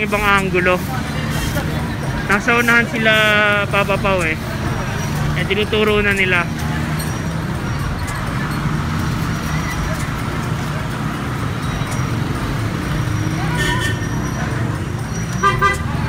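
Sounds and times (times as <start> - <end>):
low engine hum: 0.0 - 16.0
street noise: 0.0 - 16.0.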